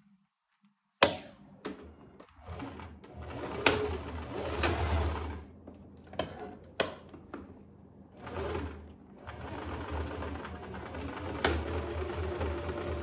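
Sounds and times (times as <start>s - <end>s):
sewing machine running: 2.4s - 5.5s, 8.1s - 13.0s.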